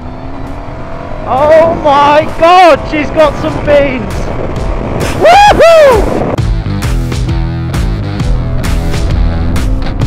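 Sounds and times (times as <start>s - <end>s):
heavy rock music: 0.0s - 10.0s
man whooping: 5.1s - 6.2s.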